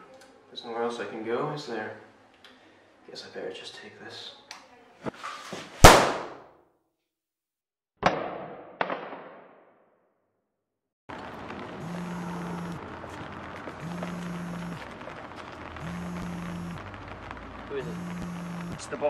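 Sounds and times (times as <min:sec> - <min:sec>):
gunshots: 0:05.8 - 0:06.5, 0:08.0 - 0:09.8
outdoor ambience: 0:11.1 - 0:19.0
mobile phone buzzing: 0:11.8 - 0:12.8, 0:13.8 - 0:14.8, 0:15.8 - 0:16.8, 0:17.8 - 0:18.8.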